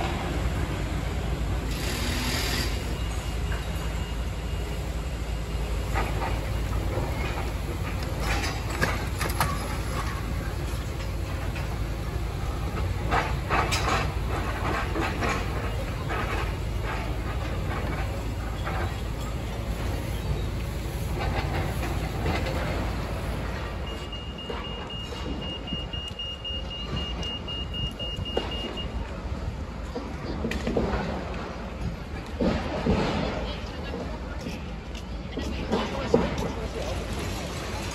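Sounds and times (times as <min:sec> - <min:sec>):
excavator engine rumble: 0:00.0 - 0:37.9.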